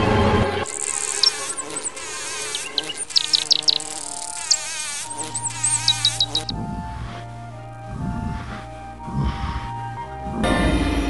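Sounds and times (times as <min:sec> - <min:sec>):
background music: 0:00.0 - 0:11.0
flying insect buzzing: 0:00.6 - 0:06.5
short high chirps: 0:00.7 - 0:06.5.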